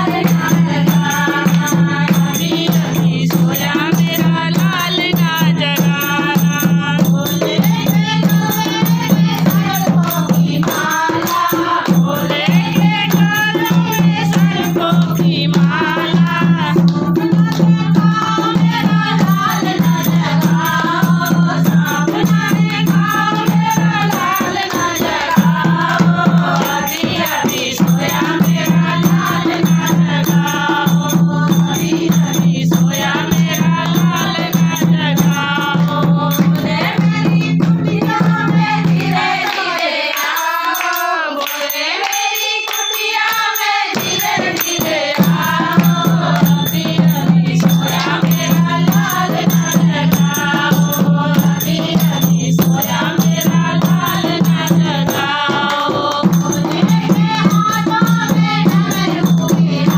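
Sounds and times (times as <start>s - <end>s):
hand drum beating: 0.0s - 39.7s, 42.2s - 59.9s
women singing: 0.0s - 59.9s
people clapping: 38.0s - 46.6s.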